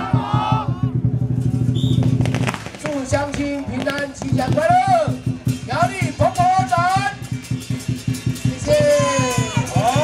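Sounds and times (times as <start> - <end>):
fast drum roll: 0.0 - 10.0
sharp cracks: 1.8 - 5.0.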